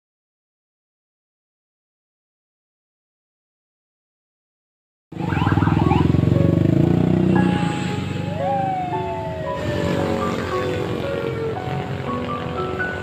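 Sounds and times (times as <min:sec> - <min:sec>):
long rising and falling tone: 0:05.2 - 0:13.0
motor scooter engines in traffic: 0:05.2 - 0:13.0
held pitched tones: 0:07.2 - 0:11.6.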